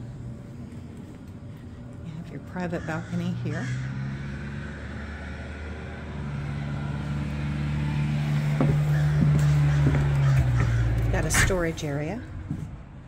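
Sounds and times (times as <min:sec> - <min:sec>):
low mechanical hum: 0:00.0 - 0:13.0
light knocks: 0:08.6 - 0:10.7.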